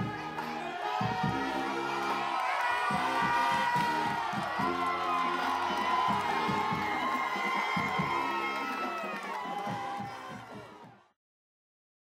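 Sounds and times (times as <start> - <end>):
crowd cheering and shouting: 0.0 - 11.2
music playing: 0.0 - 11.2.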